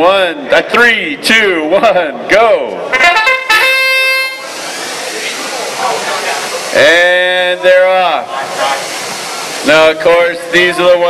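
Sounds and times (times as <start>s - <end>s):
crowd noise: 0.0s - 11.0s
buzzer horn tone: 2.9s - 4.5s.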